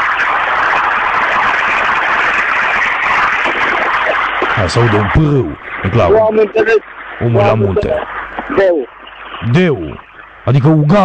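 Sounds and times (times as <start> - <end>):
rushing noise on telephone line: 0.0 - 11.0.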